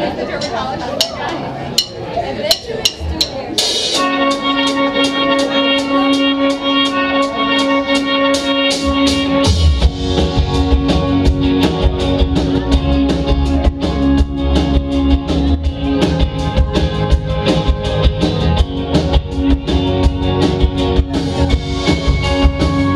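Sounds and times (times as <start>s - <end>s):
bass and kick drum: 8.8s - 22.9s.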